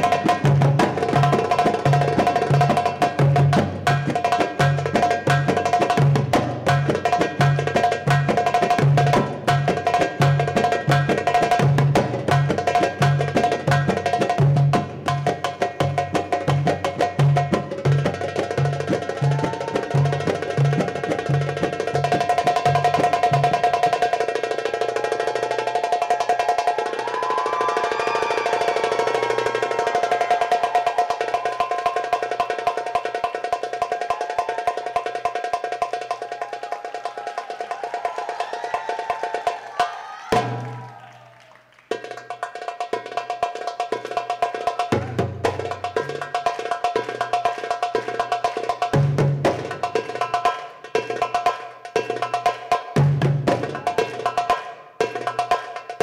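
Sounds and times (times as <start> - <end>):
frame drum rhythm: 0.0 - 40.9, 41.9 - 56.0.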